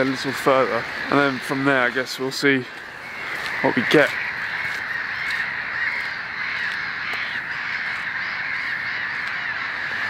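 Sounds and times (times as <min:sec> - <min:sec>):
birds chirping in chorus: 0:00.0 - 0:10.0.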